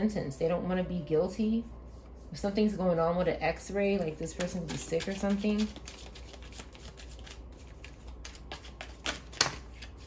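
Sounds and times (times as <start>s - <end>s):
cards being shuffled: 4.2s - 10.0s.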